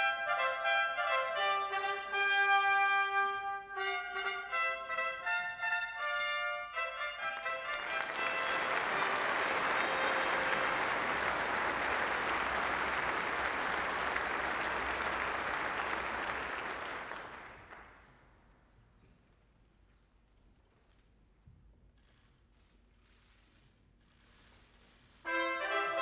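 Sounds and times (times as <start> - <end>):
brass fanfare: 0.0 - 16.6, 25.3 - 26.0
audience applauding: 7.3 - 18.2.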